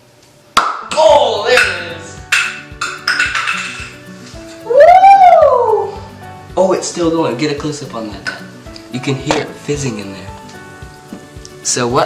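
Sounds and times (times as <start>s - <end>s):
canister cap popping: 0.6s - 4.0s
long rising-then-falling yell: 4.6s - 6.1s
excited shouting: 4.7s - 6.0s.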